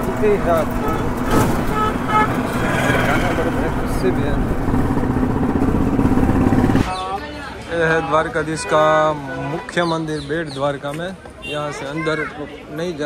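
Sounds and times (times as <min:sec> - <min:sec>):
wind and road noise: 0:00.0 - 0:07.7.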